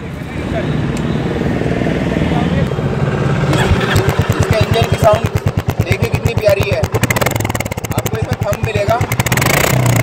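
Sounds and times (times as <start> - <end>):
motorcycle engine running: 2.7 - 10.0.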